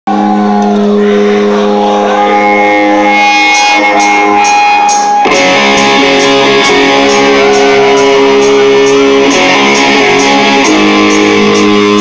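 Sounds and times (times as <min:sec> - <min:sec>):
distorted electric guitar chord: 0:00.1 - 0:12.0.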